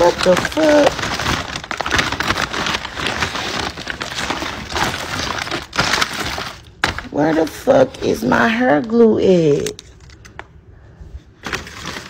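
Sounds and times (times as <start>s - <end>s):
bag crinkling and rustling: 0.0s - 8.2s, 11.4s - 12.0s.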